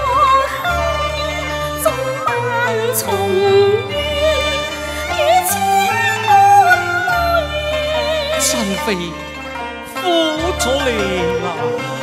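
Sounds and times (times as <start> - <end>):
instrumental accompaniment: 0.0 - 12.0
opera singing with wavering melody: 0.0 - 12.0.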